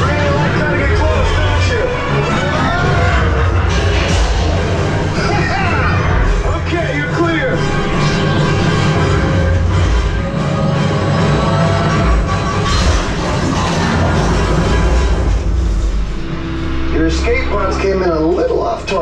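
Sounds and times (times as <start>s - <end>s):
voices: 0.0s - 4.0s, 16.9s - 19.0s
loud music with sustained notes: 0.0s - 19.0s.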